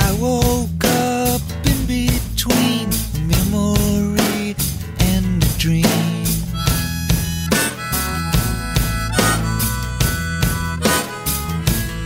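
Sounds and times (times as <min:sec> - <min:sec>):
rock band drums bass and guitar: 0:00.0 - 0:12.0
harmonica solo: 0:06.5 - 0:12.0.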